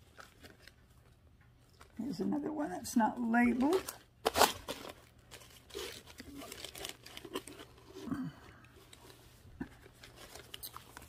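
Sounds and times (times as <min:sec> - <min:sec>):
plastic bags and packets crinkling: 0:00.0 - 0:02.4, 0:03.0 - 0:11.0.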